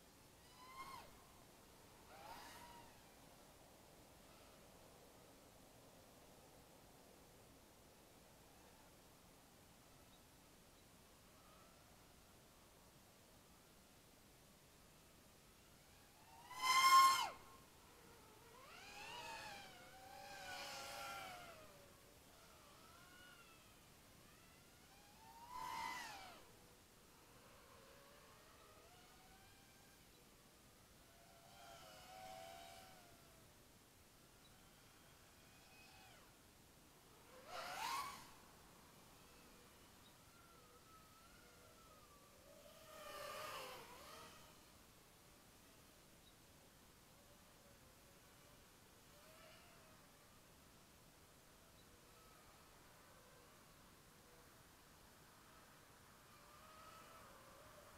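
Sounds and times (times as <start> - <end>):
quadcopter motors whining: 2.1 - 3.2, 15.8 - 30.2, 31.0 - 33.4, 34.4 - 36.4, 37.1 - 38.4, 39.0 - 44.7.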